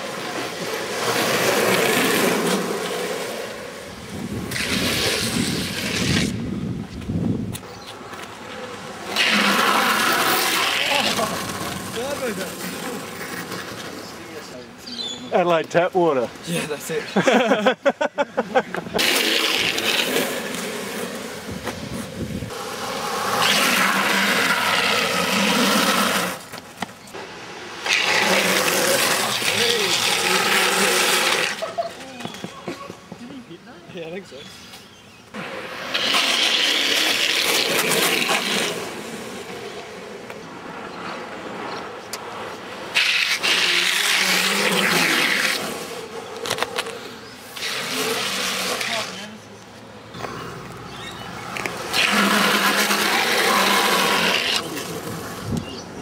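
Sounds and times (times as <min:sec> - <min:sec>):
longboard wheels sliding on asphalt: 0:00.0 - 0:56.0.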